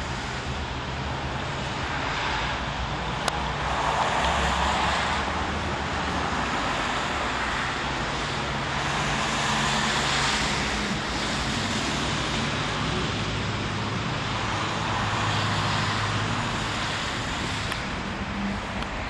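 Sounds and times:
road traffic noise: 0.0s - 19.0s.

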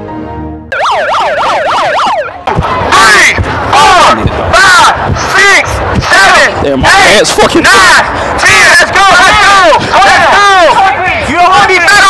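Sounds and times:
music: 0.0s - 0.7s
electronic siren wailing: 0.7s - 2.9s.

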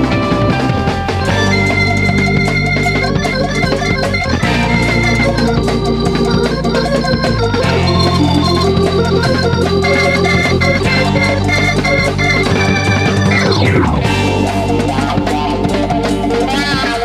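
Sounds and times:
organ chords over bass and guitar: 0.0s - 17.0s
falling pitch sweep: 9.8s - 16.7s.

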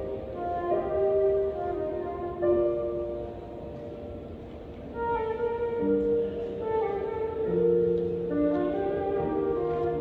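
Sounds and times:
oboe: 0.0s - 3.8s, 4.9s - 10.0s
flute: 0.0s - 4.0s, 4.9s - 10.0s
piano: 0.0s - 10.0s.

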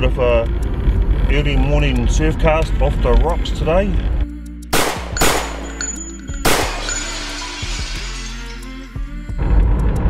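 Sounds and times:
background music with held notes: 0.0s - 10.0s
gunshot sound effects: 4.8s - 5.8s, 6.5s - 7.1s.

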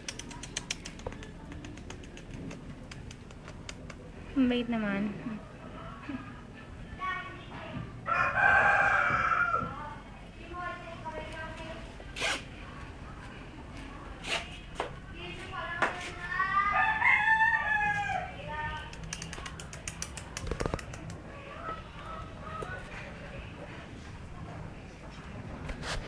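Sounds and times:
quick ticks: 0.0s - 4.1s, 18.8s - 21.2s
rooster crowing: 8.0s - 9.8s, 16.6s - 18.4s.

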